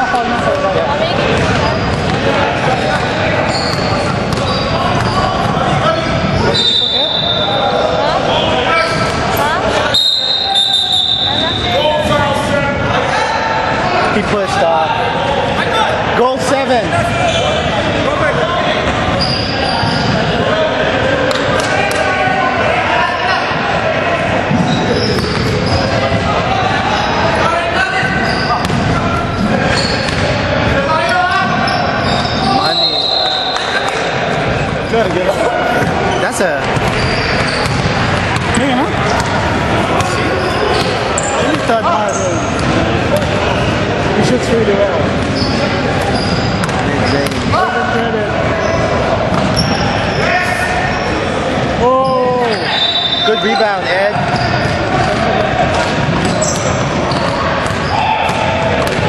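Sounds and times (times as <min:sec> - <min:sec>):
chatter of players and spectators: 0:00.0 - 0:59.0
basketball bouncing on wooden court: 0:01.2 - 0:02.2, 0:28.6 - 0:28.9, 0:36.6 - 0:39.4, 0:55.9 - 0:59.0.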